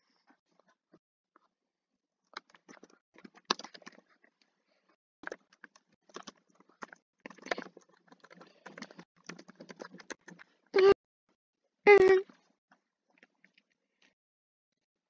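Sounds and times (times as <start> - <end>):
computer keyboard typing: 5.2 - 10.5.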